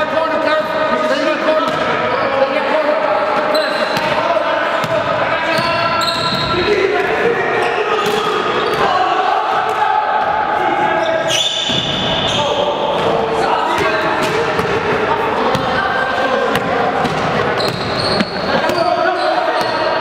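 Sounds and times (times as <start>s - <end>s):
indistinct echoing voices: 0.0s - 20.0s.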